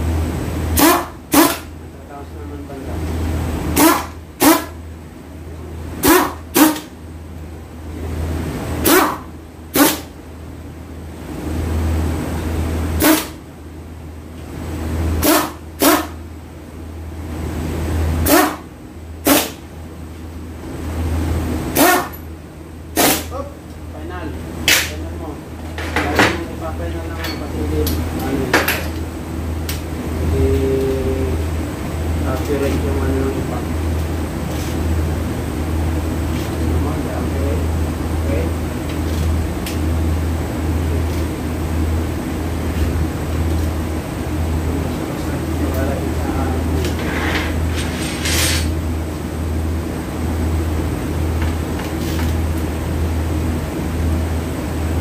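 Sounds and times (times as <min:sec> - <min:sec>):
steady low hum: 0:00.0 - 0:55.0
pneumatic impact wrench bursts: 0:00.8 - 0:01.7, 0:03.8 - 0:04.8, 0:06.0 - 0:06.9, 0:08.8 - 0:10.1, 0:13.0 - 0:13.4, 0:19.2 - 0:19.6, 0:21.8 - 0:22.2, 0:23.0 - 0:23.3.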